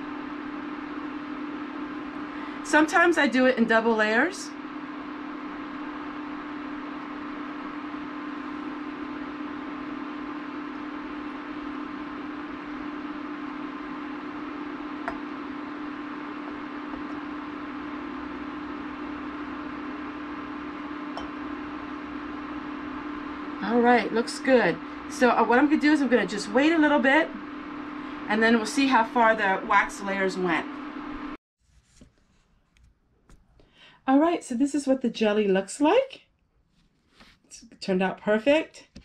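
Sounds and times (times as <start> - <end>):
appliance humming: 0.0 - 31.4.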